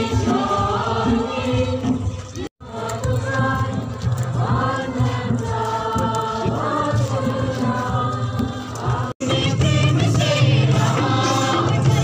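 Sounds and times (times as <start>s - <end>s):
crowd singing a hymn: 0.0s - 12.0s.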